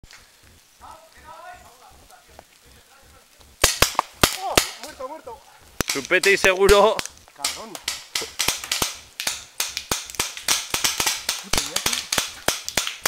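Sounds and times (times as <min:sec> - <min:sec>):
paintball markers firing: 0:03.6 - 0:04.8, 0:05.8 - 0:13.0.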